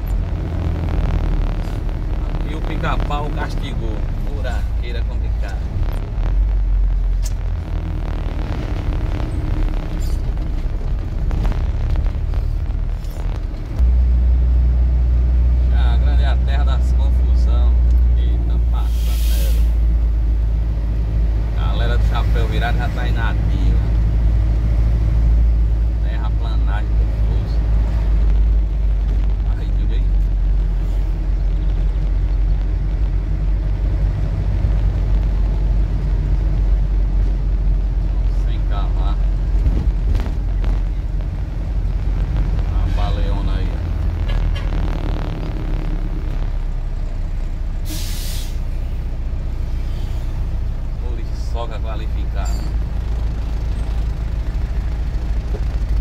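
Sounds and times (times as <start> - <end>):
truck engine droning: 0.0 - 56.0
short hiss: 18.8 - 19.8, 47.8 - 48.7.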